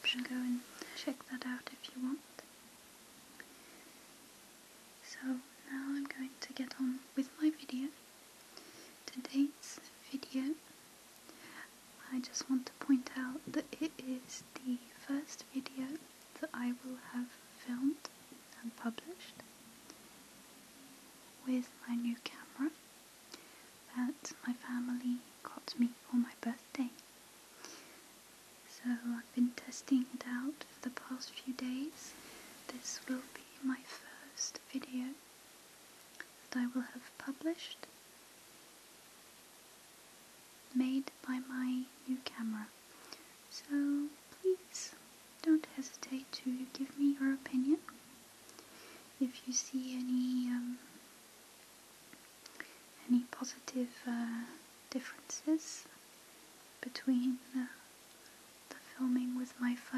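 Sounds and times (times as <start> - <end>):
woman speaking softly: 0.0 - 2.5, 5.0 - 8.0, 9.0 - 10.7, 12.0 - 19.4, 21.4 - 22.8, 23.9 - 27.0, 28.7 - 35.2, 36.5 - 37.9, 40.7 - 42.7, 43.5 - 47.9, 49.2 - 50.9, 53.0 - 56.0, 56.8 - 57.9, 58.7 - 59.9.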